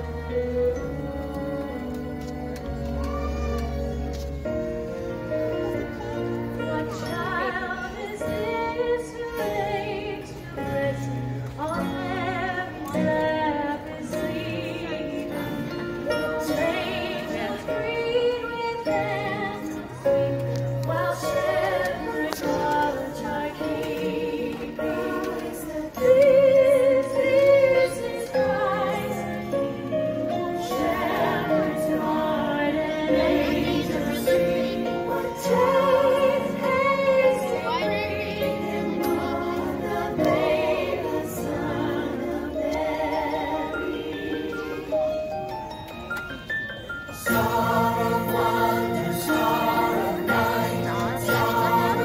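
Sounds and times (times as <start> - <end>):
musical accompaniment: 0.0 - 52.0
choir singing held notes: 6.0 - 45.6, 47.1 - 52.0.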